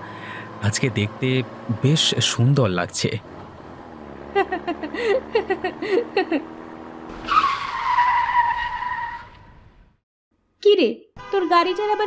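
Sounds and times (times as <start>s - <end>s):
car tyres screeching: 6.5s - 10.0s.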